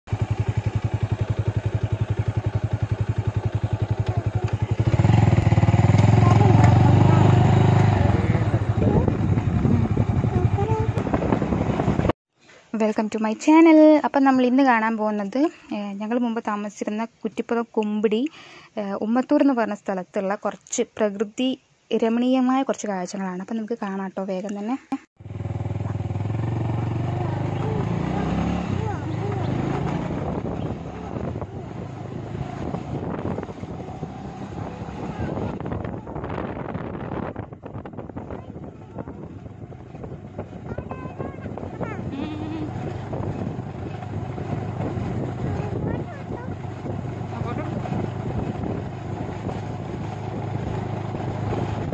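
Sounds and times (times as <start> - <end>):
small engine running: 0.1 - 11.0, 25.2 - 35.7, 38.1 - 51.9
people talking: 3.9 - 5.0, 6.0 - 11.0, 12.8 - 25.1, 27.1 - 30.2, 35.0 - 35.6, 38.2 - 39.2, 40.6 - 42.9, 45.2 - 46.7, 47.3 - 47.9.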